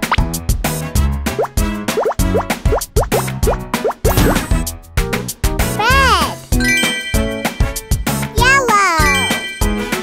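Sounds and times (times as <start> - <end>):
upbeat children's instrumental music: 0.0 - 10.0.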